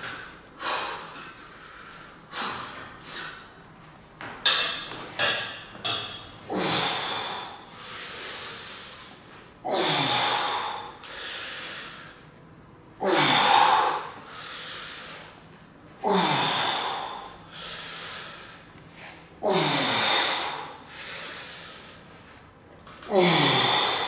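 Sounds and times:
man breathing in: 0.6s - 3.6s, 6.5s - 12.4s, 13.0s - 22.2s, 23.1s - 24.0s
man exhaling with grunt: 23.1s - 24.0s.

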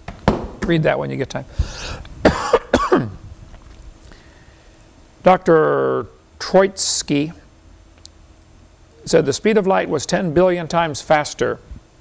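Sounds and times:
man coughing: 2.2s - 3.2s.

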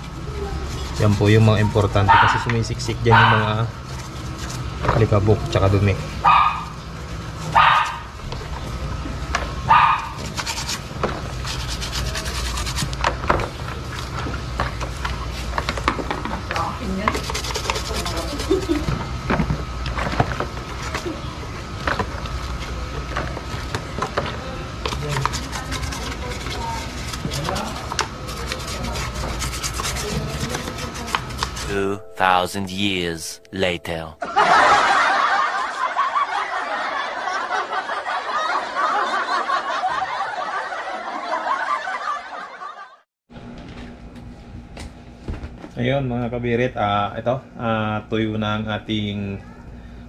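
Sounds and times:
toothbrush scrubbing plastic: 0.5s - 2.1s, 3.8s - 5.2s, 10.1s - 13.1s, 16.6s - 18.9s, 24.8s - 31.8s.

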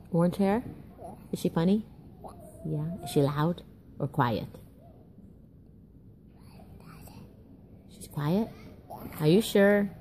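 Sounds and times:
child whispering: 6.3s - 7.5s, 8.5s - 9.3s.

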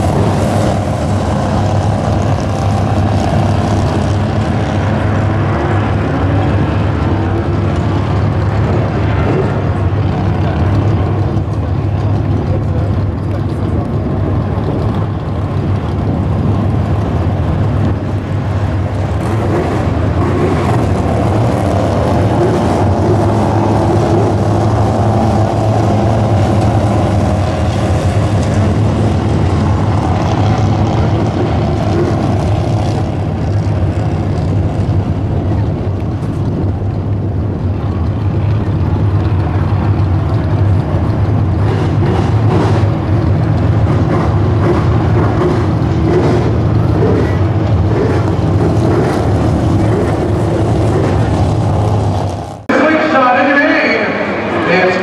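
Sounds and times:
race car engines: 0.0s - 55.0s
steady low drone: 0.0s - 55.0s.

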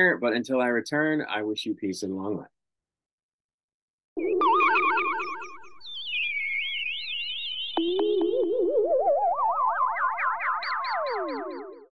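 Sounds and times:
warbling electronic tones: 4.2s - 11.9s.

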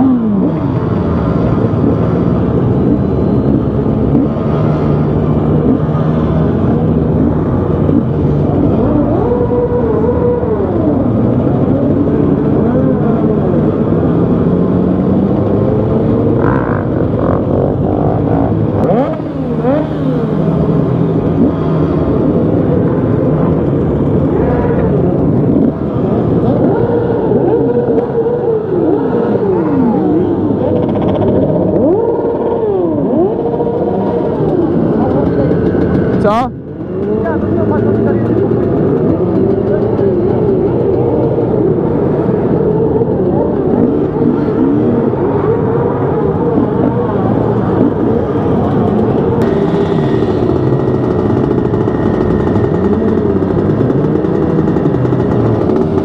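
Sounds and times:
motorcycle engines revving: 0.0s - 56.0s.

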